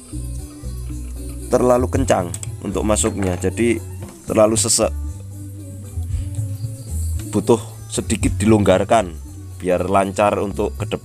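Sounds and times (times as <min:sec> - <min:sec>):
instrumental music with low bass: 0:00.0 - 0:11.0.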